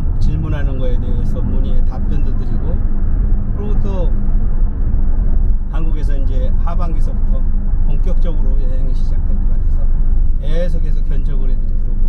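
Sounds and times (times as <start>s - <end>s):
man speaking: 0.0s - 2.8s, 3.6s - 4.2s, 5.7s - 12.0s
car road and engine rumble: 0.0s - 12.0s.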